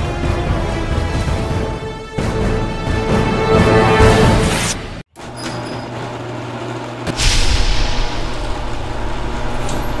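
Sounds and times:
sharp hit: 0:07.1 - 0:08.8.

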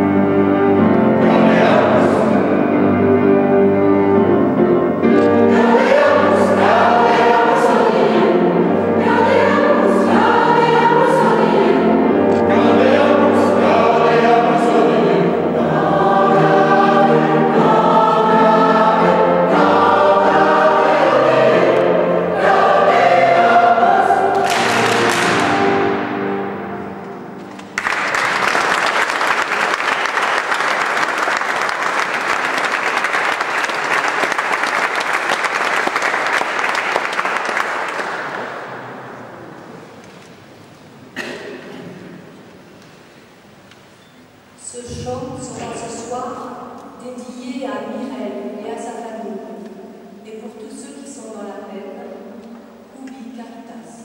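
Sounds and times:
mixed choir singing: 0:00.7 - 0:03.3, 0:05.0 - 0:27.0
audience applause: 0:24.3 - 0:25.8, 0:27.6 - 0:39.4.

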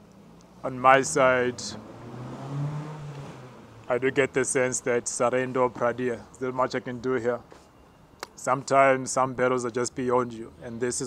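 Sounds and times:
car passing on street: 0:00.1 - 0:06.3.

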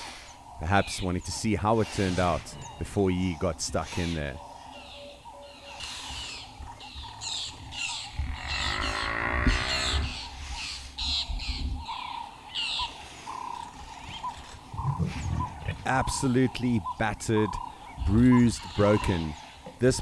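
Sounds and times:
large animal low rasping call: 0:08.1 - 0:10.3.

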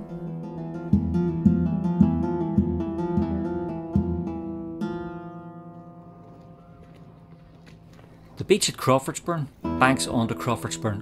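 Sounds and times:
guitar chord ringing: 0:00.0 - 0:07.9, 0:09.6 - 0:11.0
plucked guitar notes: 0:00.0 - 0:08.0, 0:09.6 - 0:11.0.

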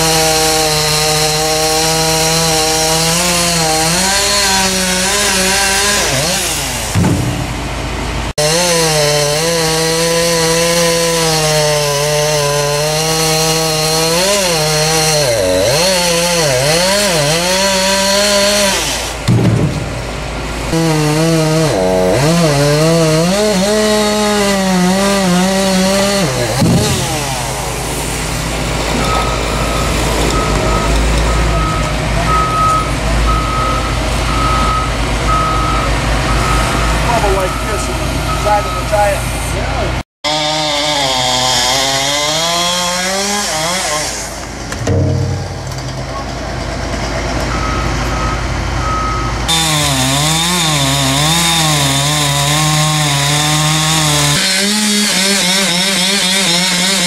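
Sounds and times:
chainsaw cutting tree trunk: 0:00.0 - 0:07.5, 0:08.3 - 0:20.0, 0:20.7 - 0:31.7, 0:40.2 - 0:45.4, 0:49.5 - 0:57.0
diesel engine running: 0:06.6 - 0:08.3, 0:44.4 - 0:49.6
reversing alarm beeping: 0:29.0 - 0:39.1, 0:47.4 - 0:49.5.

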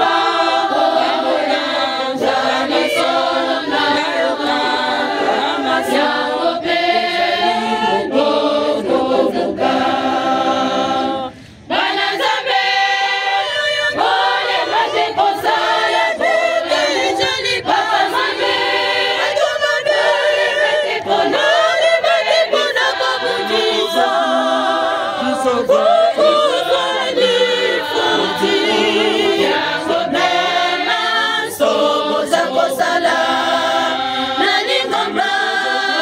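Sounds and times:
choir singing unaccompanied: 0:00.0 - 0:36.0.

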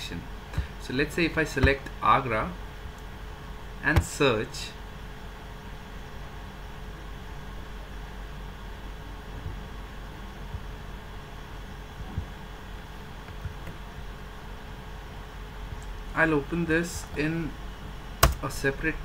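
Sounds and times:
low hum and hiss: 0:00.0 - 0:19.0.

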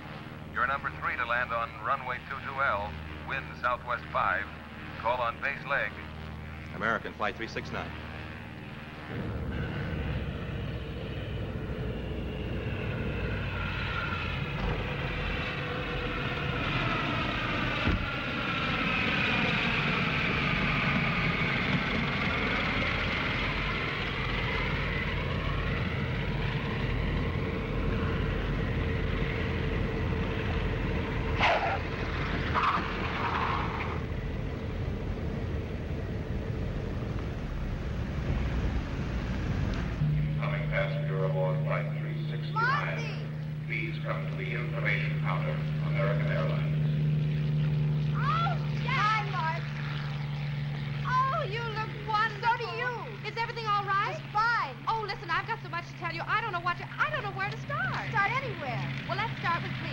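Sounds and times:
propeller airliner engines droning: 0:00.0 - 0:59.9.

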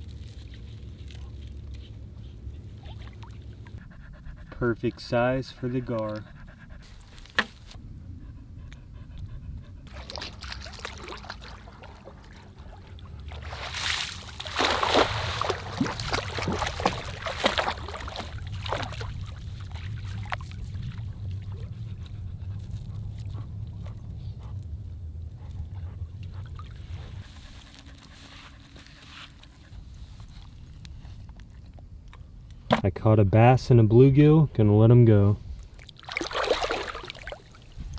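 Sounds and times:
water splashing and sloshing: 0:00.0 - 0:04.1, 0:09.6 - 0:30.8, 0:35.5 - 0:37.9
steady low rumble: 0:00.0 - 0:35.9.

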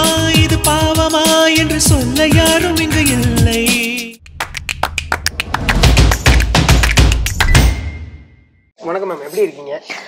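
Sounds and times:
deep bass: 0:01.6 - 0:07.6
sharp percussive taps and clicks: 0:04.2 - 0:07.8.

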